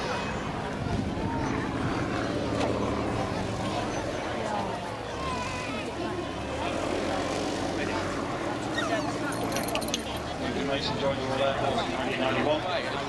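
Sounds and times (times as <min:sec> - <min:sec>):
distant aircraft engine drone: 0:00.0 - 0:13.0
people talking: 0:00.0 - 0:13.0.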